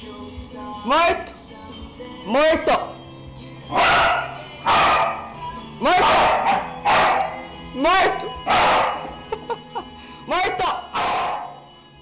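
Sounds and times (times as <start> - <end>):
dog barking: 3.7 - 7.5, 8.4 - 9.2, 10.9 - 11.6.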